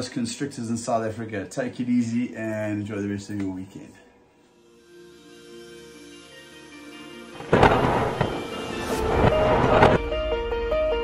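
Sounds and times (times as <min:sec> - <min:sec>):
sharp thunder cracks: 0:07.4 - 0:10.0
thunderclap rumbling: 0:07.5 - 0:10.0.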